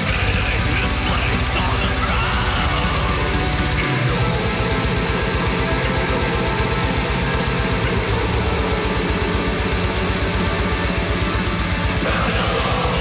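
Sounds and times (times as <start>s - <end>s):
extreme metal music: 0.0s - 13.0s
fast double-bass kick drums: 0.0s - 13.0s.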